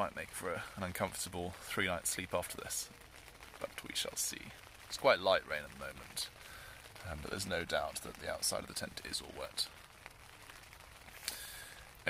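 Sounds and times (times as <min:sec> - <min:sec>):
light rain on tent fabric: 0:00.0 - 0:12.0.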